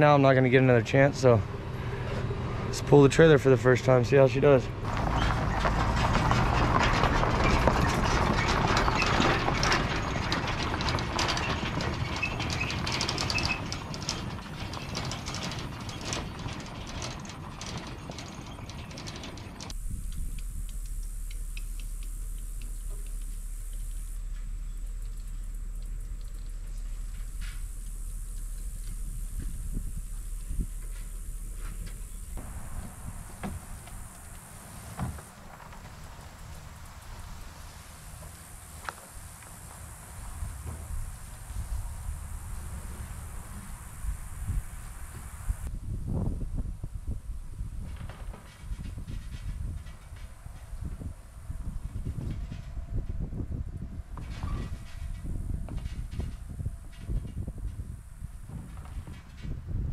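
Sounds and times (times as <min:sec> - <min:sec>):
trailer rattling on gravel: 0:00.0 - 0:45.7, 0:47.8 - 0:59.9
low wind rumble: 0:00.0 - 0:59.9.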